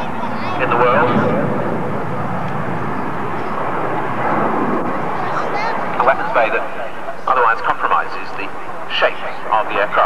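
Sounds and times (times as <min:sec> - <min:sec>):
jet aircraft flying past: 0:00.0 - 0:10.0.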